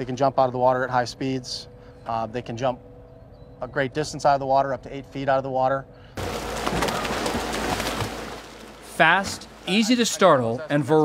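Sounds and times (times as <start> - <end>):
boat motor rumble: 6.1 - 11.0
fish splashing in water: 6.2 - 9.7.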